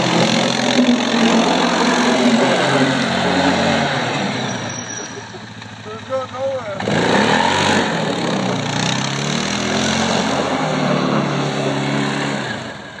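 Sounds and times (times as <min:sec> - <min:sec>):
atv engine revving: 0:00.0 - 0:13.0.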